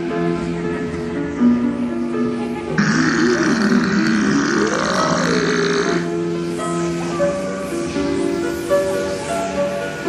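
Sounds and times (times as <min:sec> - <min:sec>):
music: 0:00.0 - 0:10.0
burp-like guttural sound: 0:02.8 - 0:06.0.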